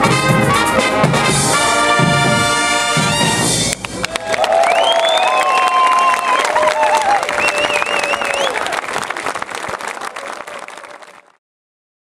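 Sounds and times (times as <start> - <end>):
audience applauding: 3.7 - 11.4
audience cheering: 3.9 - 11.4.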